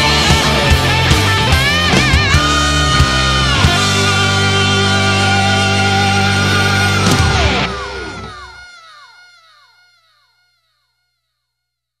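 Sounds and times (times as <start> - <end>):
echoing falling pitch: 2.1 - 10.5.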